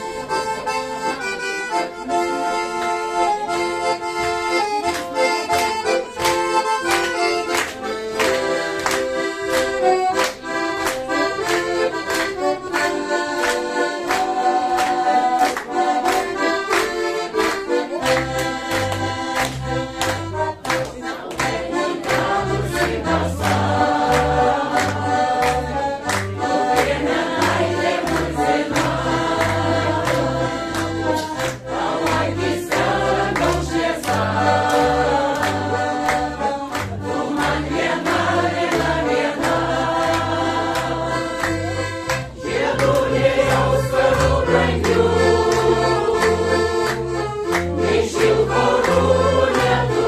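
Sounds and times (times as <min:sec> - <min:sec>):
piano accordion bass beat: 0:00.0 - 0:50.0
mixed choir singing: 0:14.0 - 0:16.5, 0:21.1 - 0:50.0.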